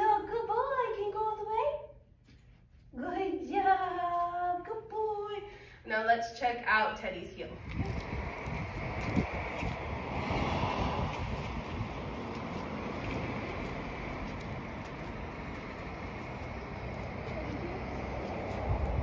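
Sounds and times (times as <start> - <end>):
wind blowing across microphone: 7.4 - 19.0.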